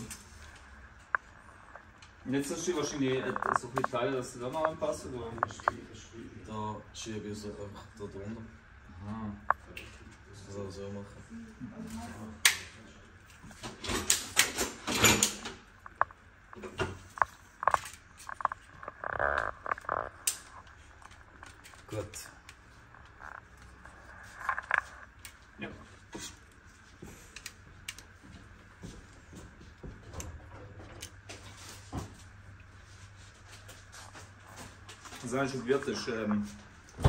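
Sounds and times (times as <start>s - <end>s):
faint low hum: 0.0s - 37.0s.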